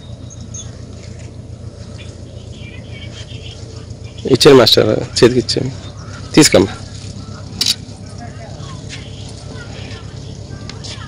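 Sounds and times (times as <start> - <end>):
low background voices: 0.6 - 11.0.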